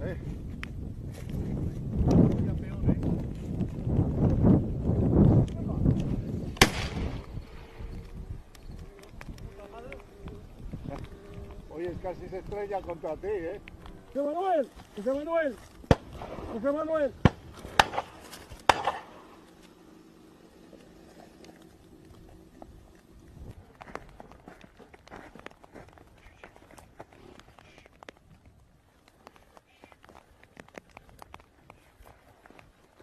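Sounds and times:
indistinct voices talking: 4.2s - 24.8s
sharp bangs: 6.5s - 7.3s, 15.8s - 19.4s
shotgun shot with echo: 6.6s - 7.2s, 17.2s - 19.2s.

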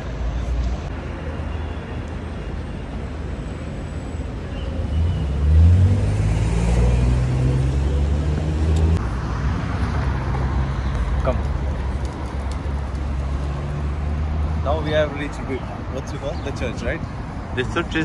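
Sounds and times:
street traffic rumble: 0.0s - 18.0s
loud vehicle engine close by: 4.9s - 9.0s.

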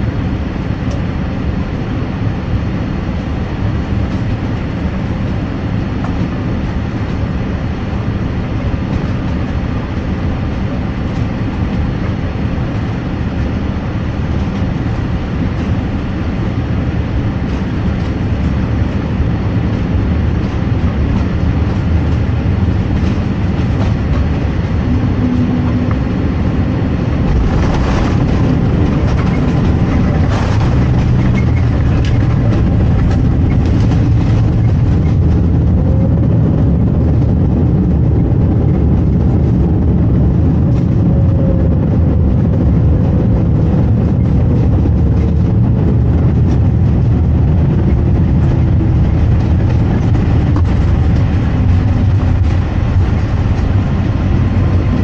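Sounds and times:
airliner cabin rumble: 0.0s - 55.0s
wheels knocking on runway: 19.6s - 55.0s.

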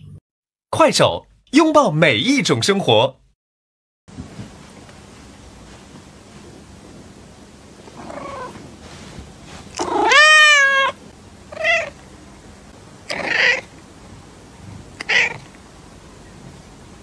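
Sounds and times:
cat meowing: 8.0s - 8.6s, 9.8s - 12.0s, 13.1s - 13.7s, 15.0s - 15.5s.

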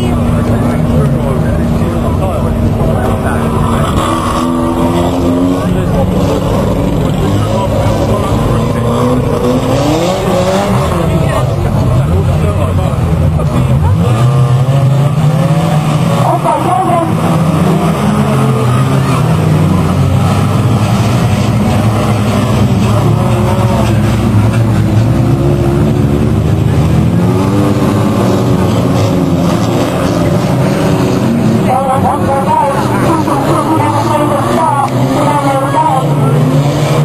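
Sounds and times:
racing car engines revving: 0.0s - 37.0s.

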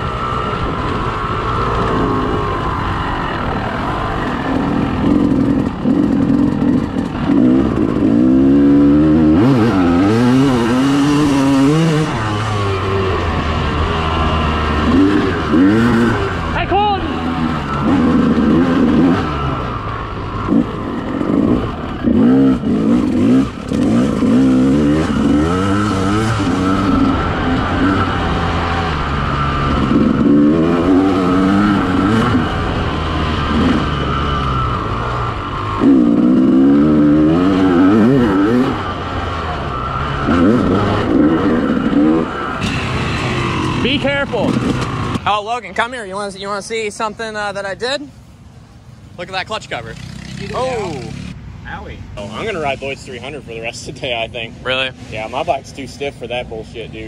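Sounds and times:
dirt bike engine revving: 0.0s - 45.6s, 49.2s - 51.4s.

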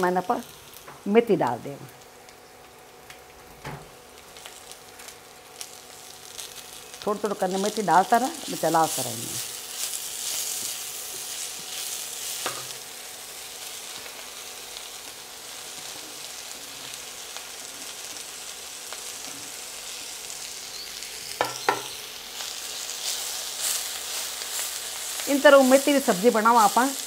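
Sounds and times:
leaves sizzling in a pan: 0.0s - 27.0s.

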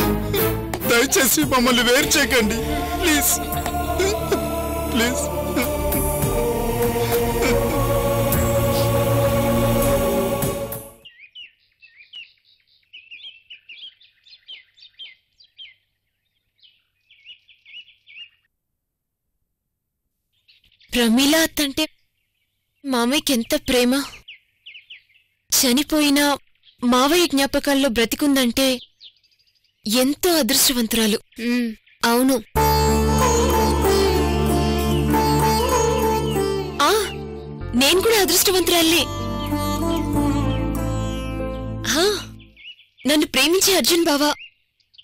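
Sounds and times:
background music: 0.0s - 11.1s, 32.6s - 42.6s
birds chirping in trills: 10.8s - 18.5s, 20.3s - 27.8s, 28.4s - 37.7s, 38.4s - 45.0s
woman speaking: 21.0s - 21.9s, 22.9s - 24.2s, 25.5s - 28.8s, 29.9s - 32.6s, 36.8s - 39.2s, 41.8s - 42.4s, 43.1s - 44.4s.

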